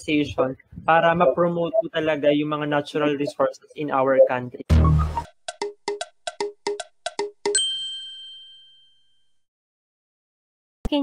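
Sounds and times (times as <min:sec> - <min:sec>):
jingle of tapped notes: 0:06.4 - 0:09.0
bell-like ding: 0:07.5 - 0:09.4.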